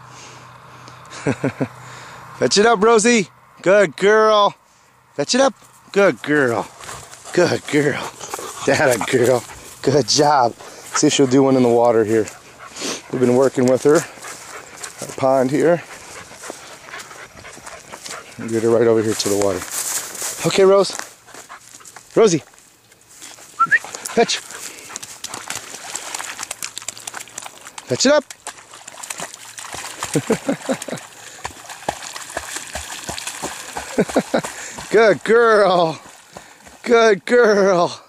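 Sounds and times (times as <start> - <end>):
man laughing: 1.1 - 1.8, 30.1 - 31.2, 33.8 - 34.8
dog splashing in water: 6.3 - 18.5, 23.7 - 37.0
puppy panting: 6.3 - 19.8, 21.2 - 22.1, 23.6 - 27.9, 29.8 - 35.0.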